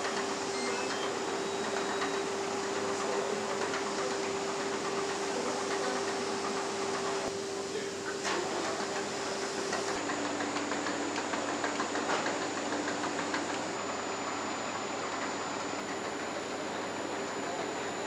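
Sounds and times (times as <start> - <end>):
machine hum with held tone: 0.0 - 10.2, 10.8 - 18.0.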